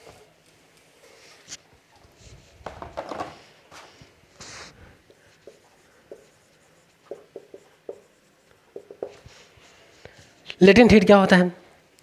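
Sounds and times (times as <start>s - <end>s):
brief hiss: 4.4s - 4.9s
marker squeaking on whiteboard: 4.4s - 9.5s.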